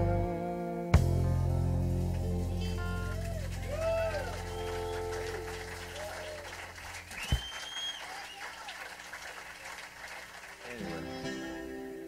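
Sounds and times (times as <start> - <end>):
bass thump: 1.0 - 3.0
audience applause: 2.1 - 11.3
high whistle: 3.7 - 8.6.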